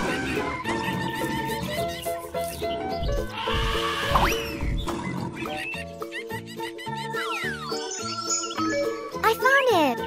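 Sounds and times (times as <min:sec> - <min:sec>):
children's background music: 0:00.0 - 0:10.0
animal call with rumbles and squeal: 0:03.3 - 0:04.6.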